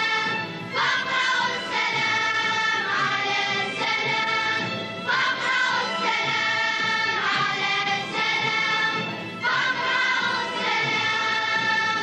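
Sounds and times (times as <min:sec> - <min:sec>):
children's choir singing: 0:00.0 - 0:12.0
instrumental accompaniment: 0:00.0 - 0:12.0.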